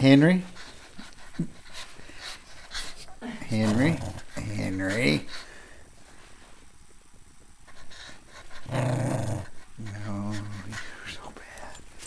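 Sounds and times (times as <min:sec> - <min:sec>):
small dog panting: 0:00.2 - 0:05.7, 0:07.6 - 0:08.8, 0:09.4 - 0:11.2.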